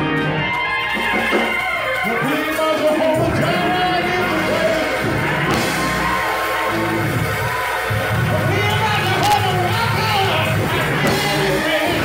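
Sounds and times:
gospel band and choir: 0.0 - 12.0.

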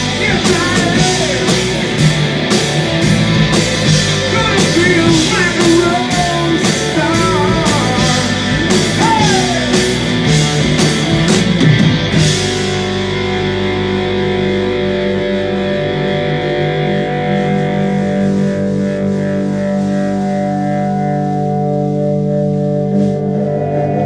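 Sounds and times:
distorted electric guitars droning: 0.0 - 24.0.

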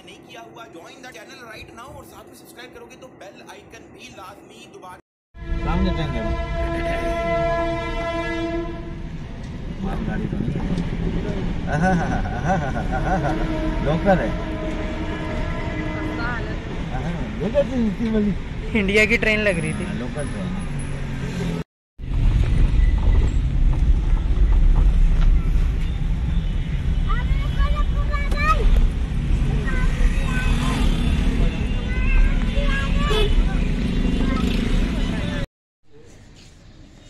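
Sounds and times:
traffic: 0.0 - 37.0
train horn blast: 5.4 - 9.2, 13.1 - 16.8
train rumble: 5.6 - 18.5, 22.0 - 30.8
car engine and tyre rumble: 8.8 - 13.4, 19.5 - 35.4.

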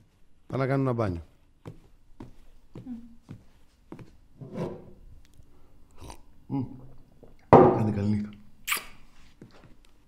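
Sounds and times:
footsteps on hard floor: 0.0 - 5.0, 9.2 - 9.8.

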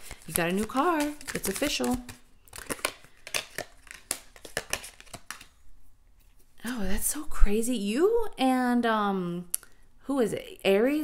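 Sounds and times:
cards flicking and tapping on table: 0.0 - 5.6.

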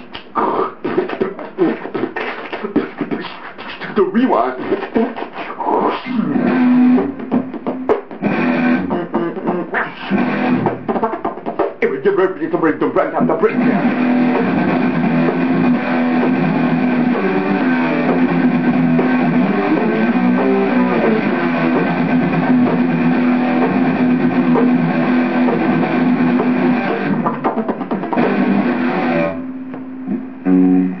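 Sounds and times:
guitar playing: 3.8 - 31.0.

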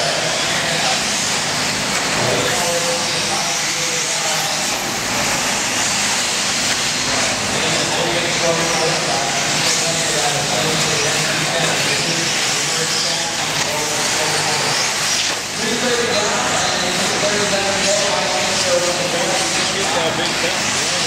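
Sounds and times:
rc car motor whine: 0.0 - 21.0
voices in a hall: 0.0 - 21.0.

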